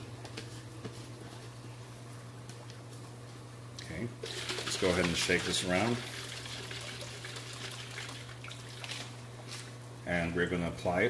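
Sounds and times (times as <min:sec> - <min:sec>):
steady low hum: 0:00.0 - 0:11.0
water sloshing in container: 0:04.2 - 0:09.7.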